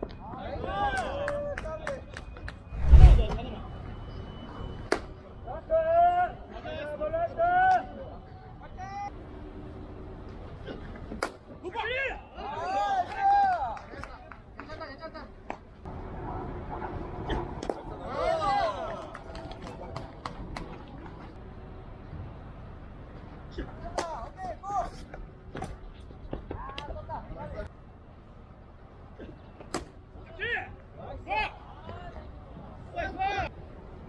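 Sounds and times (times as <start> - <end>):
low rumble: 2.7 - 3.5.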